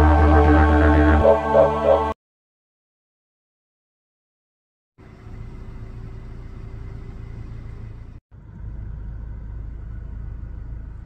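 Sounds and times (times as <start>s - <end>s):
car driving on dirt road: 5.0s - 11.0s.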